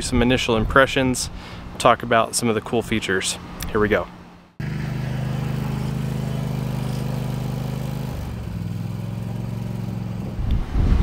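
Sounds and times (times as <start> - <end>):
lawn mower engine running: 4.6 - 10.4.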